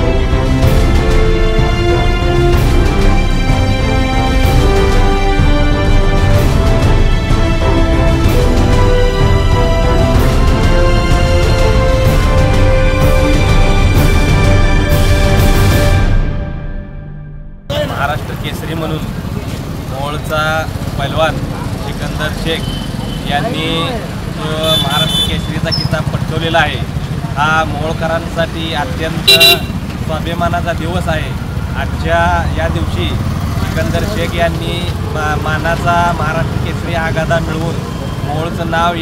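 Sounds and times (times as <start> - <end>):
street noise rumble: 0.0 - 39.0
men talking: 17.7 - 39.0
man speaking: 23.3 - 33.2.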